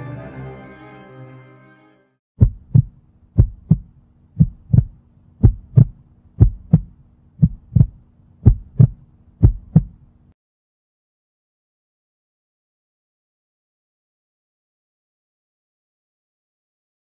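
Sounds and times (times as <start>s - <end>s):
heartbeat thumps: 2.4s - 10.0s
low steady hum: 2.4s - 10.4s.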